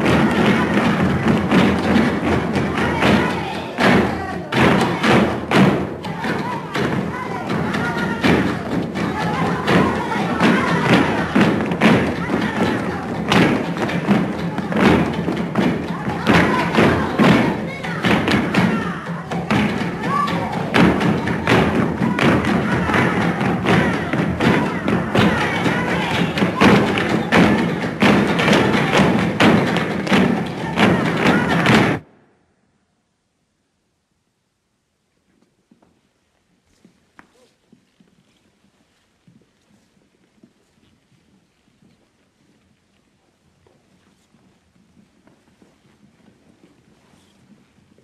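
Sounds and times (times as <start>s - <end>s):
hands clapping: 0.0s - 32.0s
women shouting: 2.4s - 5.3s, 6.0s - 15.1s, 15.7s - 32.0s.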